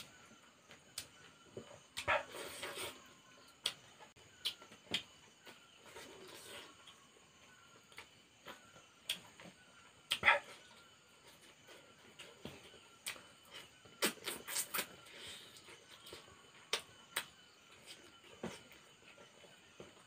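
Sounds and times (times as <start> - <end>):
man chewing food: 0.0 - 20.0.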